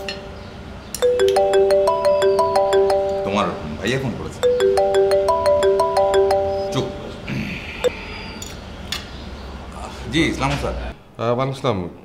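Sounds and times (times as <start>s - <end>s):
phone melodic ringtone: 1.0s - 3.8s, 4.4s - 7.2s.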